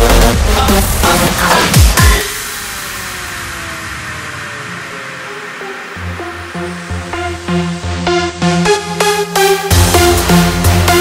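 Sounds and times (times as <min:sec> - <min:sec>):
synthesized noise sweep: 0:00.0 - 0:11.0
faint tones sliding downward: 0:02.4 - 0:08.4.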